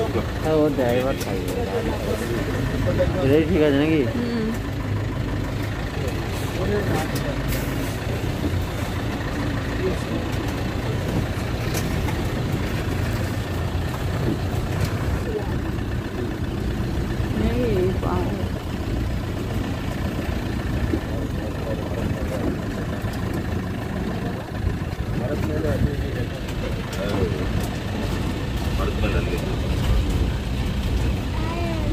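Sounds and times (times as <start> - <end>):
passengers' voices: 0.0 - 4.8, 5.7 - 19.4, 20.2 - 31.9
bus engine rumbling: 0.0 - 31.9.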